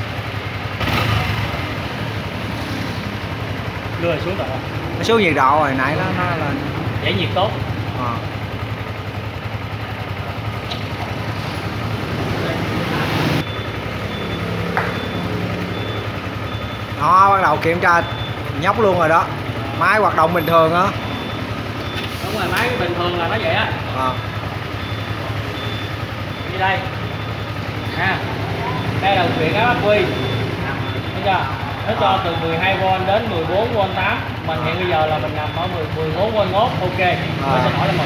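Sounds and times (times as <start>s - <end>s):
motorcycle engine idling: 0.0s - 38.0s.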